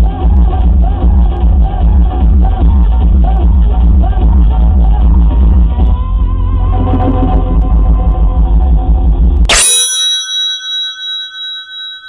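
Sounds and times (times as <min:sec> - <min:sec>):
electronic chime with wobbling tones: 0:06.6 - 0:08.4, 0:09.5 - 0:12.0.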